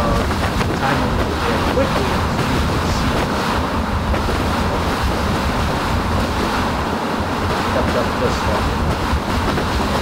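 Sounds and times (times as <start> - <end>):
strong wind buffeting car: 0.0 - 10.0.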